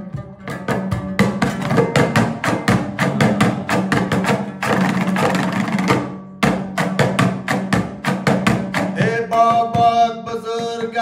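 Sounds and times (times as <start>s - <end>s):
lute strummed fast: 0.0s - 11.0s.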